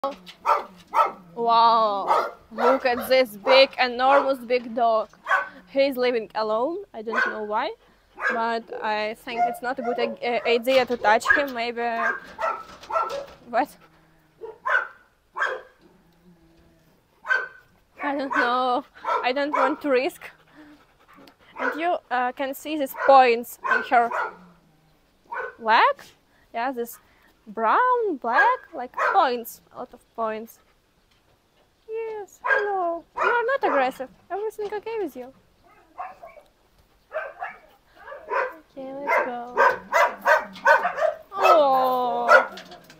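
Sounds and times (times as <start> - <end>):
dog barking: 0.4 - 1.2, 2.0 - 4.4, 5.2 - 5.6, 7.1 - 7.4, 8.2 - 8.4, 9.3 - 10.6, 11.2 - 13.4, 14.4 - 15.8, 17.2 - 19.9, 21.5 - 21.8, 22.9 - 24.4, 25.3 - 25.6, 28.4 - 29.3, 32.4 - 34.0, 35.6 - 36.5, 37.1 - 41.6, 42.3 - 42.7.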